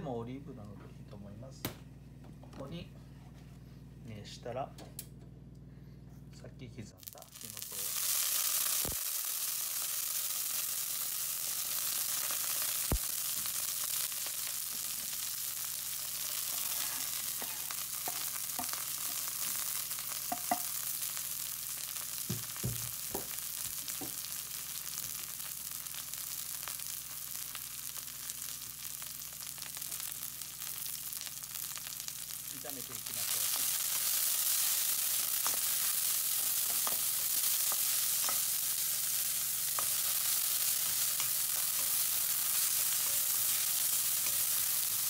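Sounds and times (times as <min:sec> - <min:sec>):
food sizzling in oil: 0:07.0 - 0:45.0
small knocks: 0:22.3 - 0:23.3.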